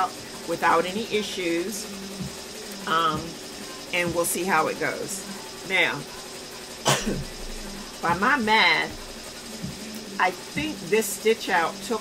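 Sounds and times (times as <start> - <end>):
woman coughing: 6.8 - 7.4.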